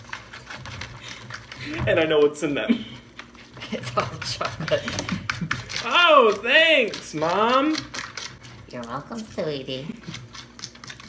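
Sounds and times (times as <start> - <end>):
person speaking: 3.7 - 8.0
foil wrappers crinkling: 4.0 - 11.0.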